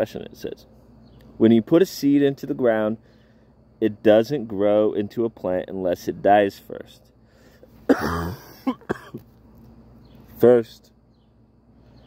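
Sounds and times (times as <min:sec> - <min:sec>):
man coughing: 0:07.8 - 0:09.2.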